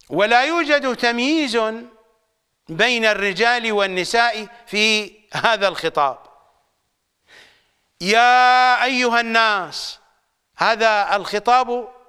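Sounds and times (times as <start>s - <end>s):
man speaking: 0.0s - 1.9s, 2.7s - 6.4s, 8.0s - 10.0s, 10.6s - 12.0s
soft intake of breath: 7.2s - 7.8s.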